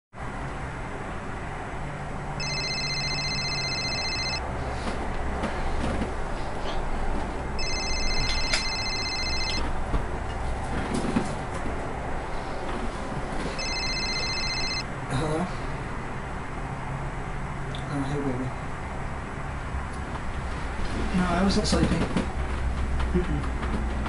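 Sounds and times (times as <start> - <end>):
phone electronic ringtone: 2.4 - 4.4, 7.6 - 9.7, 13.6 - 14.9.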